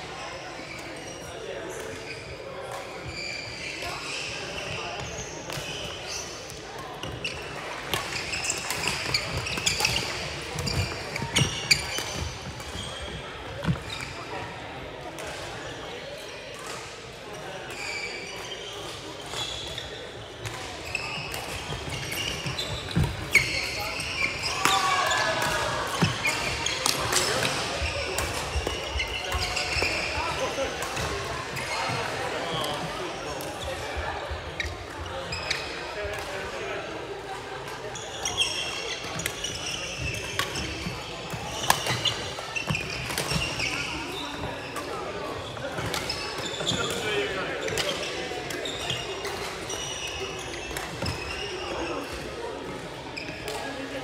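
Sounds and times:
players' voices and calls: 0:00.0 - 0:54.0.

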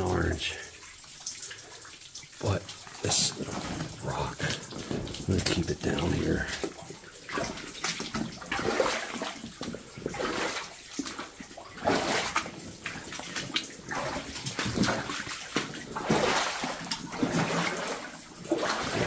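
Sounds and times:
footsteps wading through water: 0:00.7 - 0:19.0.

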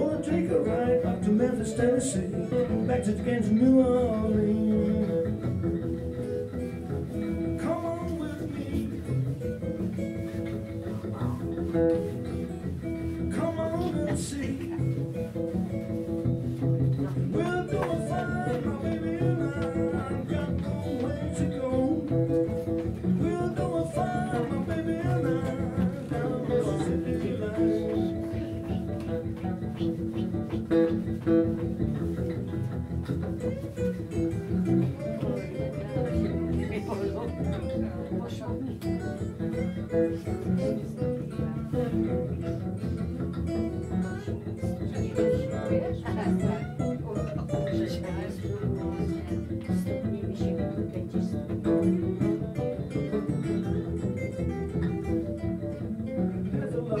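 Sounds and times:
acoustic guitar strumming: 0:00.0 - 0:57.0
lead guitar with bent notes: 0:00.0 - 0:57.0.

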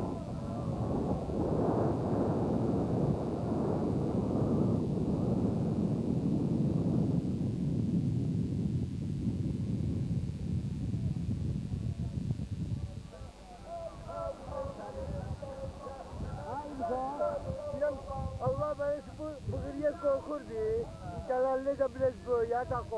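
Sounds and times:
wind buffeting microphone: 0:00.0 - 0:22.9.

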